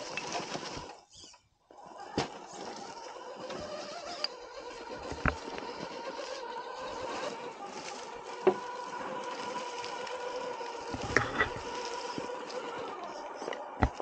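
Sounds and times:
toy car electric motor whining: 0.0 - 14.0.

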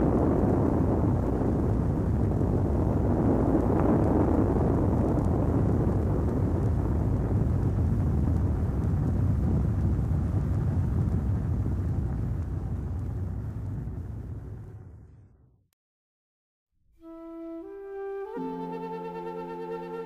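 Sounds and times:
deep continuous rumbling: 0.0 - 15.7.

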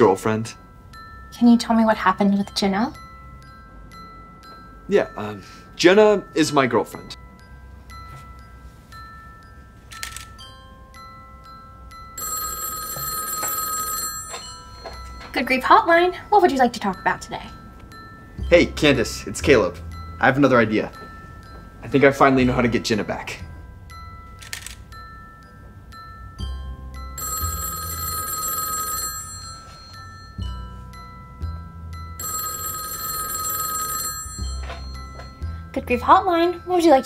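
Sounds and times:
background music: 0.0 - 37.0
landline telephone ringing: 12.0 - 17.7, 27.1 - 30.8, 32.2 - 35.4.

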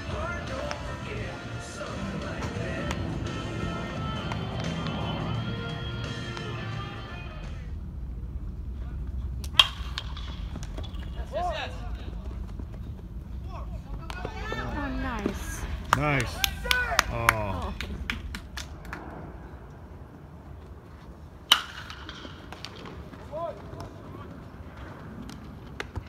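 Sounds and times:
scattered voices: 0.0 - 7.8, 13.3 - 18.0
bat cracking ball: 9.4 - 11.3, 21.4 - 23.2.

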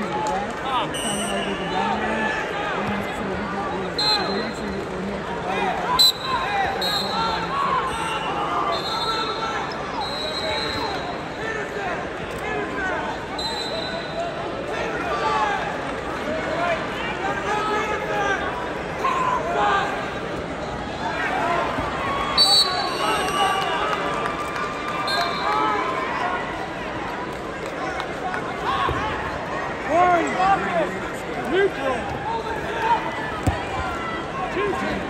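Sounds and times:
crowd shouting and talking: 0.0 - 35.0.

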